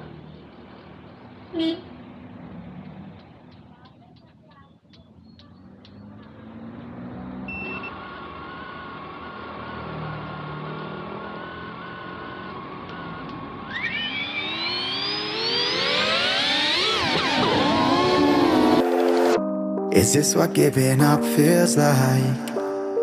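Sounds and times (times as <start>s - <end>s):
drone motors whining: 5.8s - 19.4s
short beep: 7.5s - 8.0s.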